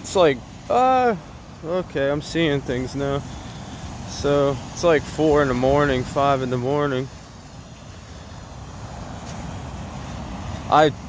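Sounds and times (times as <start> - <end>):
ocean surf rushing: 0.0 - 11.0.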